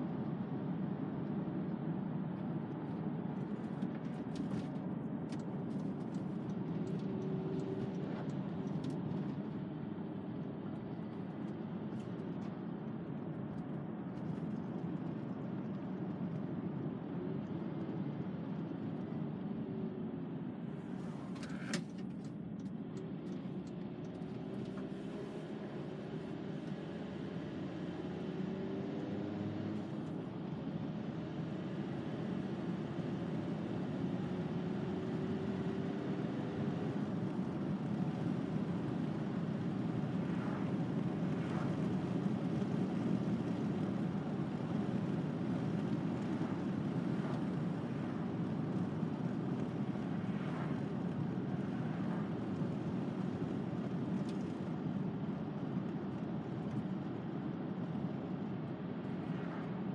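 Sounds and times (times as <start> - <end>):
road and engine noise in van: 0.0 - 59.9.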